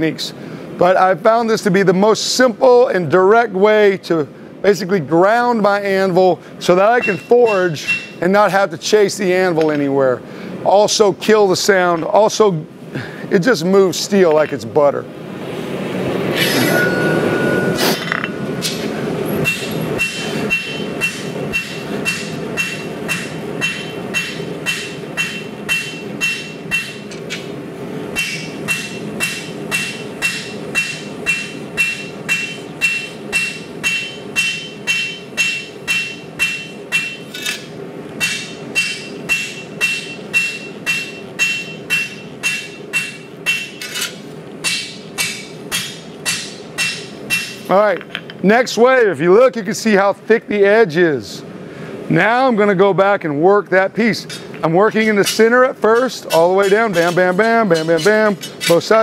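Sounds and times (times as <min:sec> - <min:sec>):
hammer striking steel on anvil: 0:07.0 - 0:08.2, 0:16.4 - 0:27.5, 0:28.1 - 0:48.3, 0:54.3 - 0:59.0.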